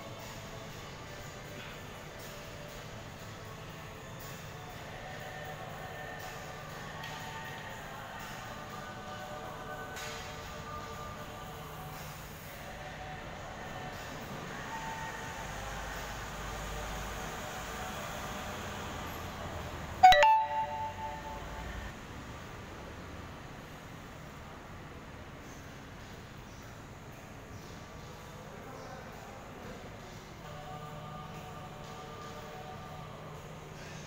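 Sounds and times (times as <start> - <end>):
indoor hall hum: 0.0 - 34.0
loud ringing ding: 20.0 - 21.8
faint held tones: 20.0 - 21.9.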